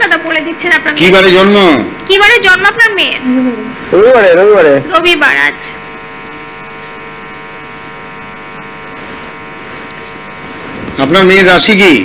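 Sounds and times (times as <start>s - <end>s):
steady electrical buzz: 0.0s - 12.0s.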